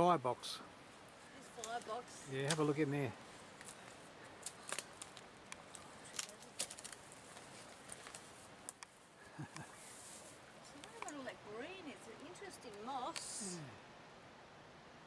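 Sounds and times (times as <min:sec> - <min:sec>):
twigs snapping underfoot: 0:01.6 - 0:02.7, 0:03.5 - 0:09.7.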